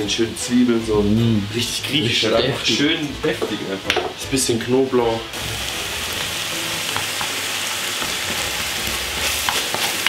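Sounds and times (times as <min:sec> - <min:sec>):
meat sizzling in a frying pan: 0:00.0 - 0:10.0.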